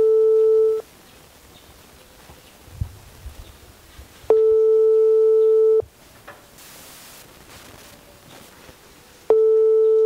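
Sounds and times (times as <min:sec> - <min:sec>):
telephone ringback tone: 0:00.0 - 0:00.8, 0:04.3 - 0:05.9, 0:09.3 - 0:10.0.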